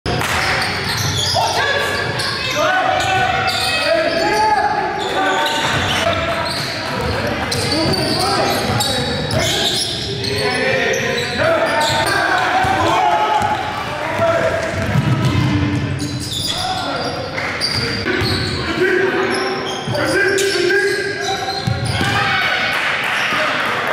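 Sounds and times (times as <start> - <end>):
players calling out: 0.8 - 23.9.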